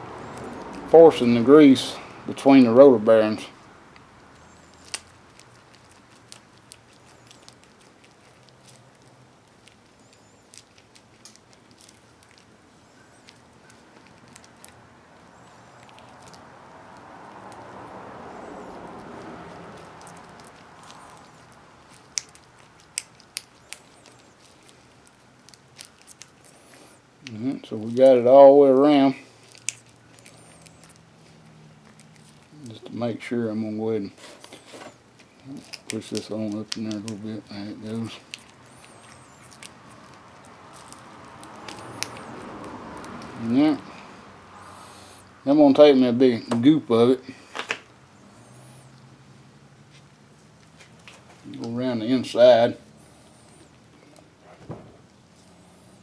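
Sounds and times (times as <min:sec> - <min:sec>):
grease squelching and clicking: 0:03.9 - 0:17.9, 0:18.7 - 0:33.0, 0:34.3 - 0:43.6.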